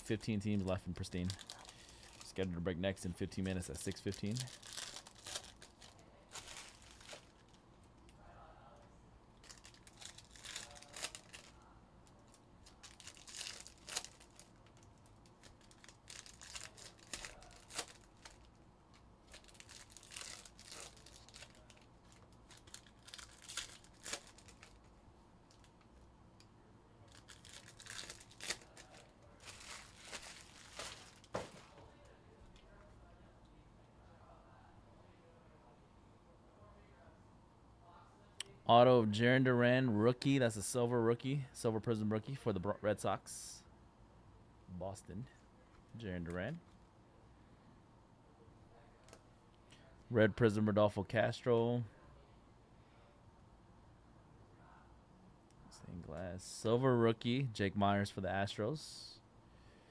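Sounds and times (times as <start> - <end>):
card wrappers tearing and crinkling: 1.1 - 2.5, 3.4 - 7.5, 9.4 - 11.6, 12.6 - 18.6, 19.2 - 24.9, 27.1 - 31.7.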